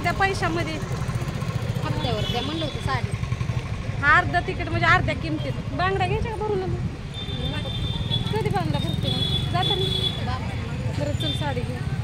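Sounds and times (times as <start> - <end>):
women talking: 0.0 - 3.3, 3.9 - 12.0
low street rumble: 0.0 - 12.0.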